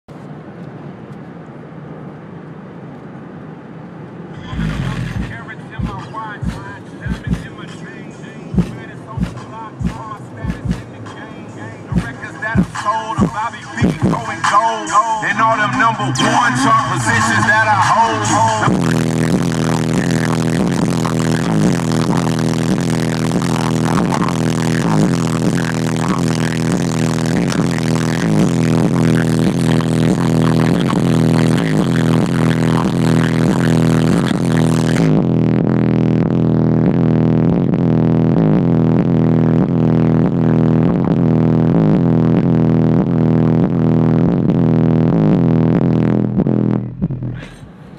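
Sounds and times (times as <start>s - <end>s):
loud music with heavy bass: 4.4s - 47.8s.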